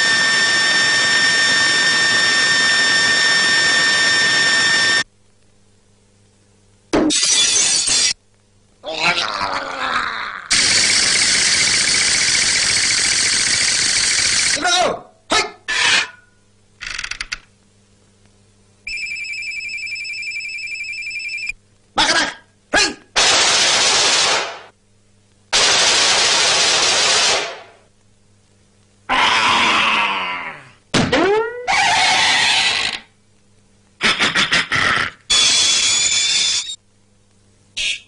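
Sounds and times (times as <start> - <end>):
squawking voice-like sound: 8.8 - 10.5, 29.1 - 33.0, 37.8 - 38.0
electric bell ringing: 18.9 - 21.5.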